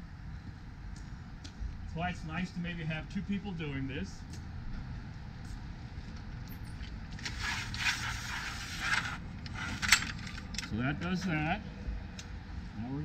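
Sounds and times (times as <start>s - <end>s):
awning arm scraping and rattling: 7.1s - 10.7s.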